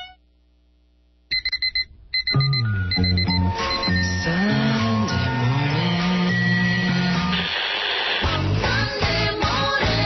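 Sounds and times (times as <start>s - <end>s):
rapid high electronic beeping: 1.3s - 5.1s
music with deep bass line: 1.9s - 7.3s.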